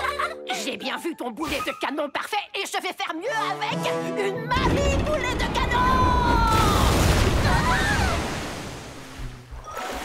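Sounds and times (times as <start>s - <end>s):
music: 0.0s - 5.2s
loud water splash: 6.5s - 10.0s.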